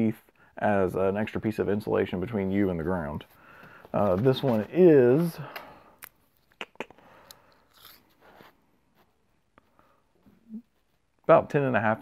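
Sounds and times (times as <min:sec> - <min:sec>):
tape measure rustling: 0:07.5 - 0:08.6.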